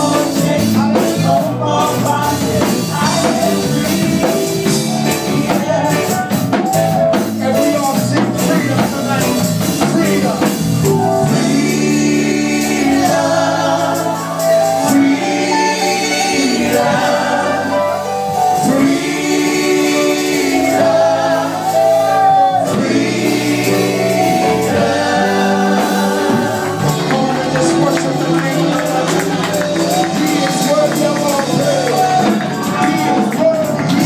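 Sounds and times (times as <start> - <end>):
group singing gospel song: 0.0 - 34.0.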